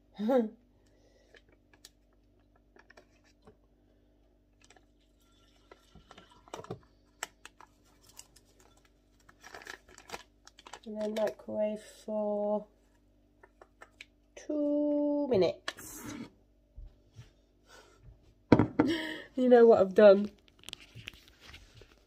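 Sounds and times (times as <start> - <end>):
paper sachet crinkling: 7.4 - 11.4
paper rustling: 20.4 - 22.0.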